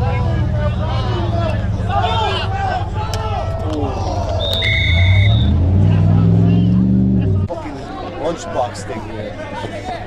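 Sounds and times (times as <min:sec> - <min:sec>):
vehicle engine running loud: 0:00.0 - 0:07.5.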